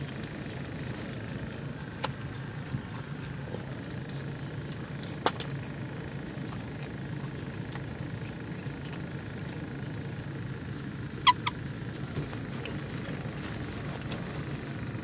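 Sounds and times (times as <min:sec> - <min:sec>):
person chewing: 0:00.0 - 0:15.0
steady low hum: 0:00.0 - 0:15.0
sharp squeak: 0:11.2 - 0:11.6.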